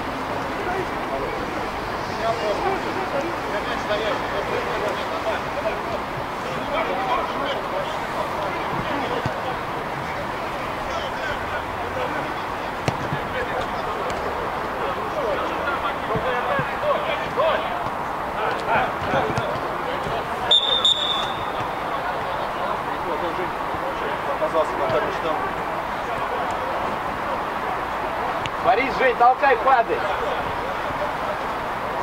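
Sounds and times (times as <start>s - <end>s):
players shouting: 2.1s - 32.0s
ball being kicked: 12.8s - 14.2s, 21.0s - 21.8s
short high whistle blast: 20.5s - 21.6s.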